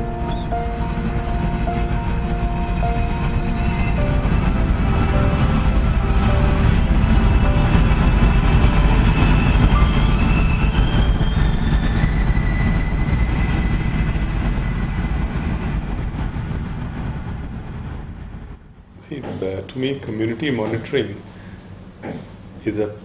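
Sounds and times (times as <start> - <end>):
short music notes: 0.0 - 10.7.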